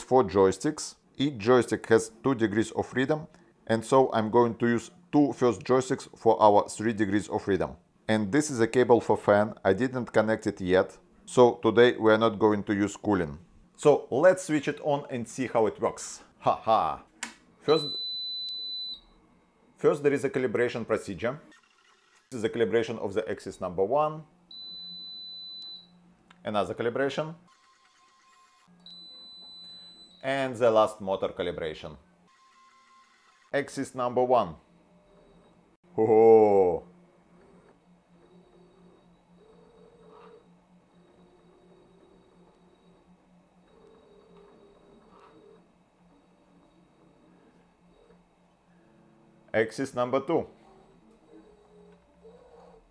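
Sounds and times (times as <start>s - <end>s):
high-pitched electronic beep: 17.7s - 19.0s
faint robot arm motor whine: 21.5s - 22.3s, 32.0s - 33.5s, 34.5s - 49.5s, 50.4s - 52.9s
steady low hum: 33.7s - 52.9s.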